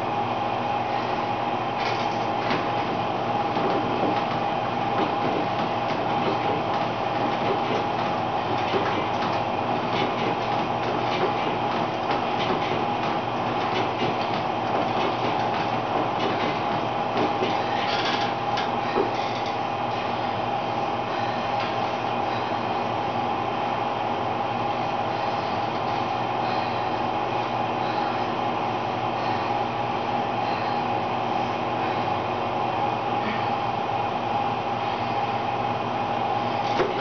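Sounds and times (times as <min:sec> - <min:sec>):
elliptical trainer whirring: 0:00.0 - 0:37.0.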